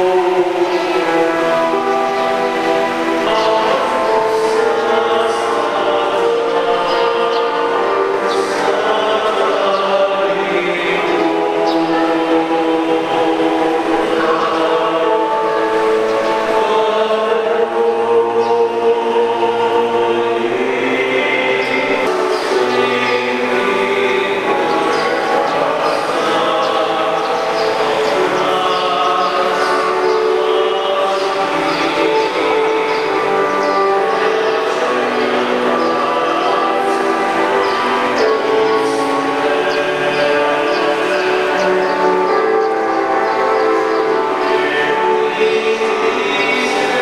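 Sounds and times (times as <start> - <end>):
choir singing sustained chords: 0.0 - 47.0.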